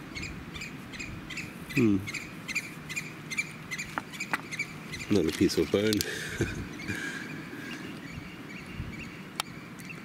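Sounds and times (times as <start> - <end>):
small animal chirping: 0.1 - 6.0.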